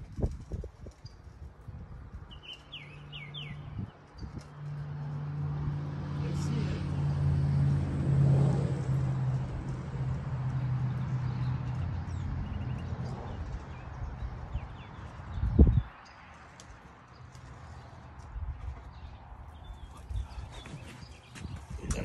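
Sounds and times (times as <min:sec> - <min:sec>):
bird chirping: 0:02.3 - 0:03.9.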